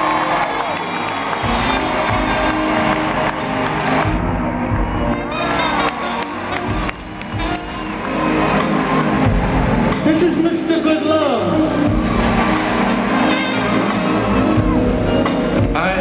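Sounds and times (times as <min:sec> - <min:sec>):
crowd cheering: 0:00.0 - 0:15.6
live band playing chords: 0:00.0 - 0:16.0.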